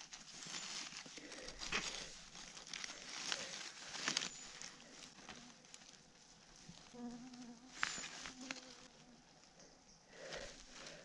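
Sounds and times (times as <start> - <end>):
fly buzzing: 6.8 - 9.3.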